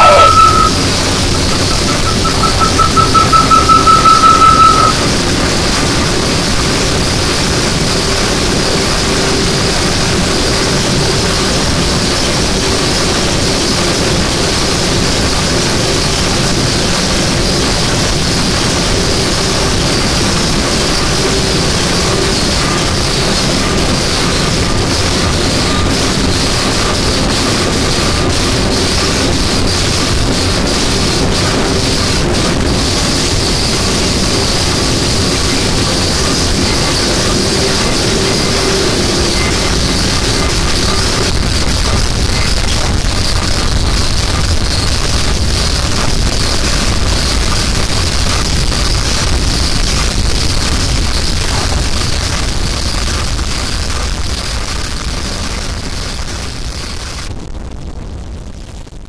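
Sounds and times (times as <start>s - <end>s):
high feedback tone pulsing: 0.0s - 52.0s
dense wall of static: 0.0s - 59.0s.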